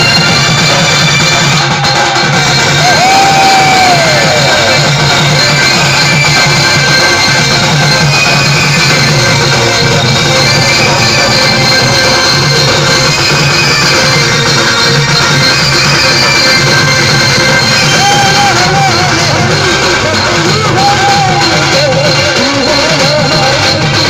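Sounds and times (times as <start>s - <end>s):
drums: 0.0s - 24.0s
live music through pa: 0.0s - 24.0s.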